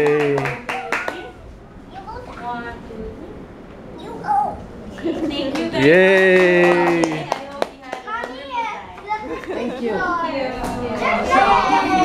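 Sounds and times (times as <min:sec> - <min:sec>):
young children chattering: 0:00.8 - 0:06.0, 0:06.7 - 0:12.0.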